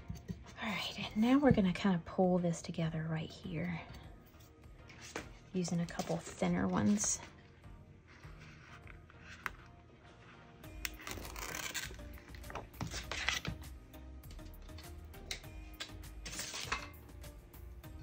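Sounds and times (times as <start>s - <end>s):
quiet background music: 0.0s - 18.0s
vinyl strips peeling and rustling: 10.8s - 13.6s.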